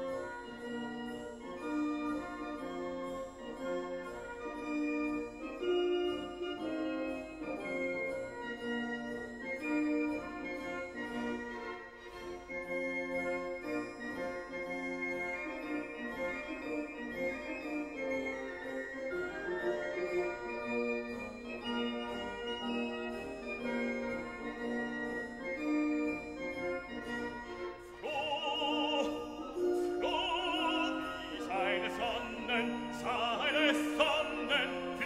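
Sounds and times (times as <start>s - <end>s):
operatic singing voice: 28.0s - 35.0s.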